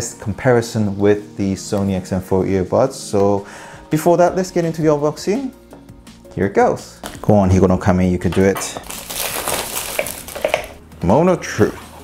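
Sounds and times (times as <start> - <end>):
plastic wrap crinkling on box: 8.8 - 10.8.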